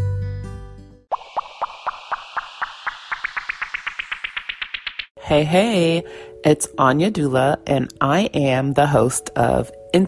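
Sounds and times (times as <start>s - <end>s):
music: 0.0s - 1.1s, 5.2s - 10.0s
rising electronic blips: 1.1s - 5.2s.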